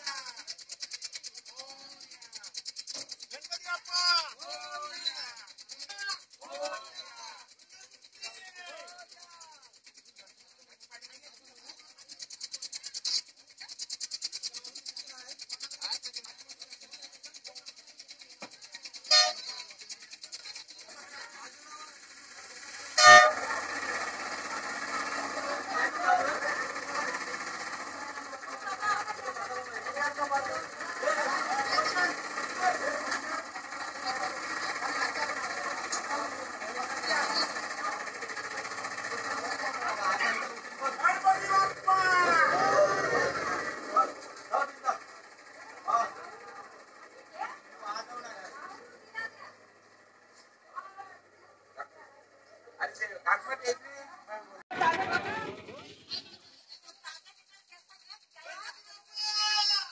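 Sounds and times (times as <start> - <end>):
crowd voices: 0.0 - 57.2.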